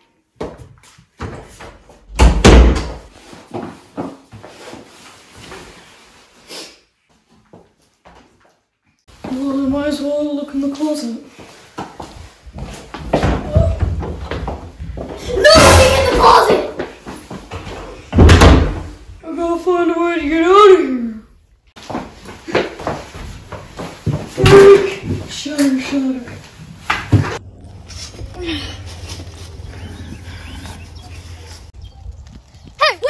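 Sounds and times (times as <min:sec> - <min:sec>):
wooden door slamming: 0:02.1 - 0:03.0, 0:18.1 - 0:19.0
child shouting: 0:15.3 - 0:16.8, 0:32.8 - 0:33.0.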